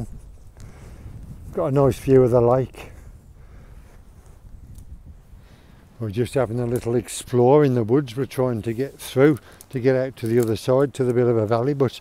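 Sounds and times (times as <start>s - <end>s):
wind buffeting microphone: 0.0s - 11.8s.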